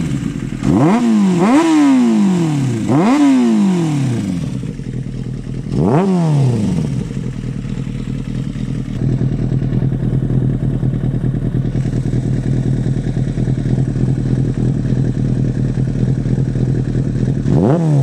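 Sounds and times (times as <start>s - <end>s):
motorcycle engine idling: 0.0s - 18.0s.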